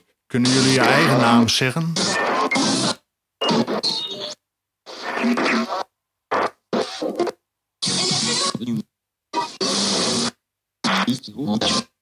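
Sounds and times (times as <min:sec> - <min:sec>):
chopped voice-like fragments and noise: 0:00.3 - 0:12.0.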